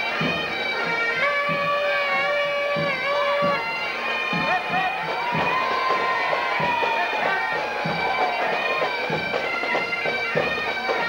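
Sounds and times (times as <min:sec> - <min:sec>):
bagpipes playing: 0:00.0 - 0:11.0
low drumbeat: 0:05.0 - 0:09.2.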